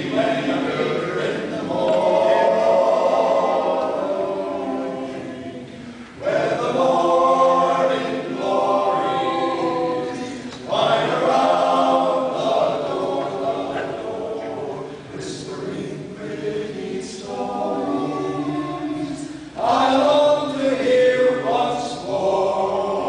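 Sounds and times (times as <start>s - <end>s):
men singing a cappella: 0.0s - 23.0s.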